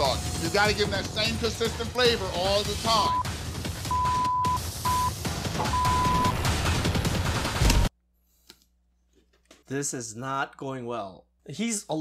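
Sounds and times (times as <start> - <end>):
background music: 0.0 - 7.9
censor bleeps: 3.9 - 5.1, 5.7 - 6.3.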